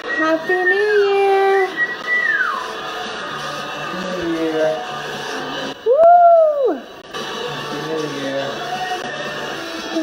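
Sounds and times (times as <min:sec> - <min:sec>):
music from television: 0:00.0 - 0:10.0.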